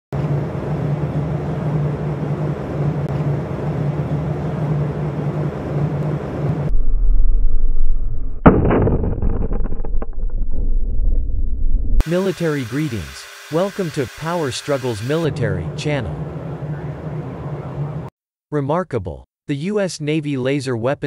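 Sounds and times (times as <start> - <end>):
steady hum with rushing noise: 0.2 - 7.4, 11.9 - 18.1
explosion with low rumble: 6.5 - 12.0.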